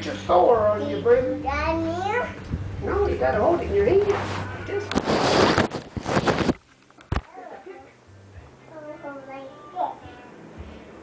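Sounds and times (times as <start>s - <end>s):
microphone handling noise: 2.4s - 3.0s, 3.9s - 7.3s.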